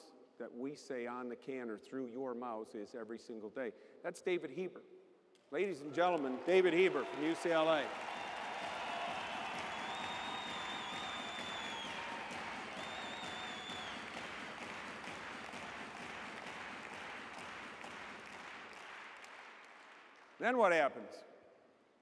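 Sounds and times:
audience applauding: 0:05.8 - 0:20.7.

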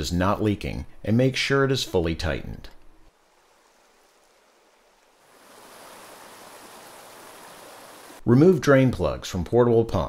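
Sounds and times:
creek water rushing: 0:03.1 - 0:08.2.

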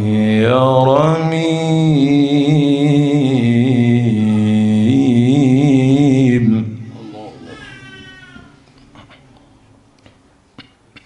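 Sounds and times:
person reciting with echo: 0:00.0 - 0:07.6.

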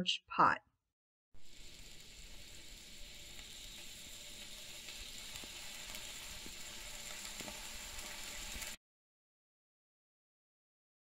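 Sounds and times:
vegetables sizzling in fat: 0:01.4 - 0:08.8.

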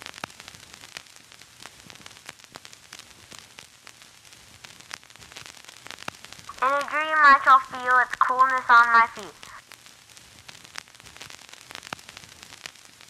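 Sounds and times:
crackles and pops: 0:00.0 - 0:13.0
static hiss: 0:00.0 - 0:13.0.

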